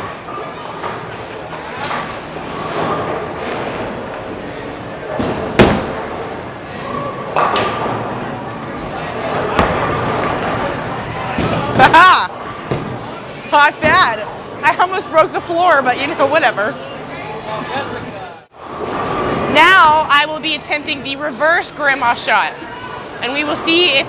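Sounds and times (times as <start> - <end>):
bowling alley din and voices: 0.0 - 24.0
bowling ball rolling: 0.1 - 14.2
bowling ball thud: 5.1 - 6.4, 9.4 - 10.6.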